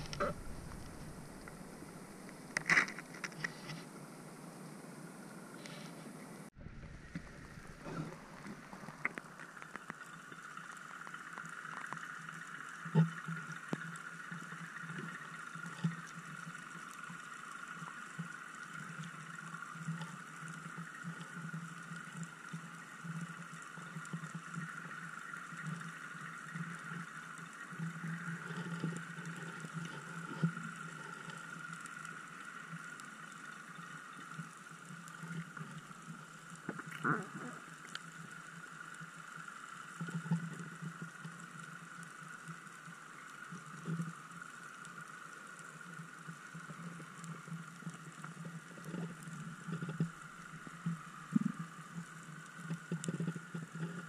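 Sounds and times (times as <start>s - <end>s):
low drone: 0.0s - 2.6s
high underwater hum: 0.0s - 54.0s.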